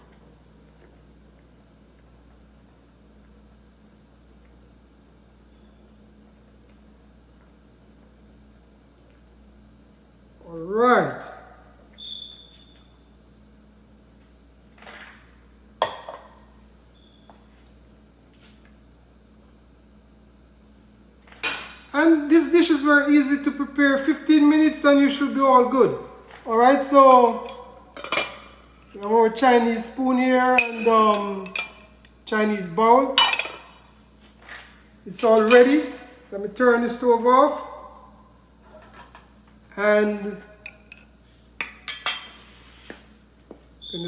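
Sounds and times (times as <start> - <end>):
steady low hum: 0.0 - 44.0
spoon clinking against ceramic bowl: 30.6 - 31.8.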